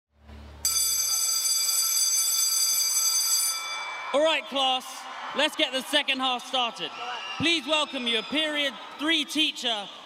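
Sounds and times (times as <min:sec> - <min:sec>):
school bell ringing: 0:00.6 - 0:04.5.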